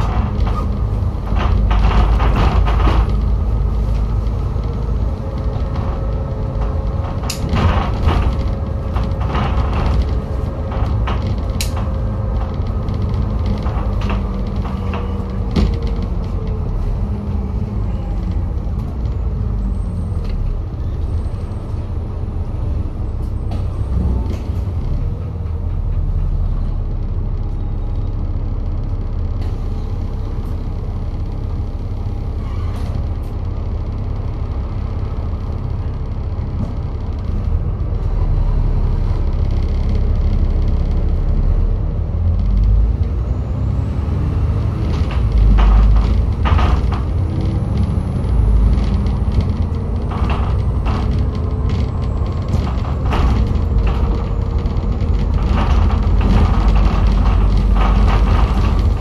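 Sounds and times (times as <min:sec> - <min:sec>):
bus body knocks and rattles: 0:00.0 - 0:59.0
bus diesel engine rumble: 0:00.0 - 0:59.0.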